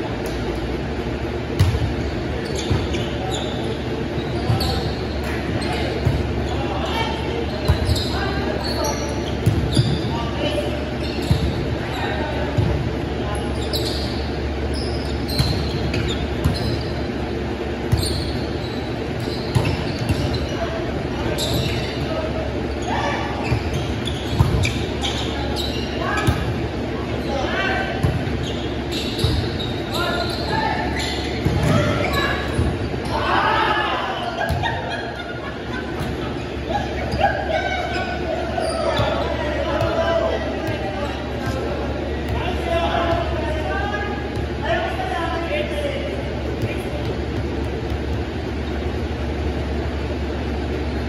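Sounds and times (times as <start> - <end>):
players' voices in hall: 0.0 - 51.0
sneaker squeaks on wooden floor: 1.5 - 33.2, 35.9 - 44.6, 46.4 - 50.4.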